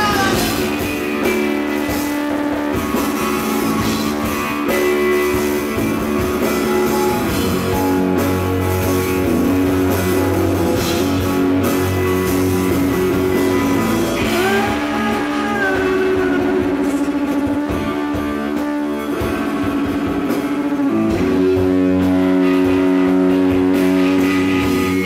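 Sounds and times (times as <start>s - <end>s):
live rock band: 0.0s - 25.0s.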